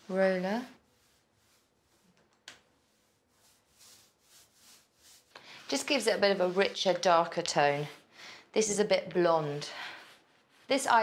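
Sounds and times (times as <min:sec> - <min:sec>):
paint roller strokes on wood: 0:00.0 - 0:11.0.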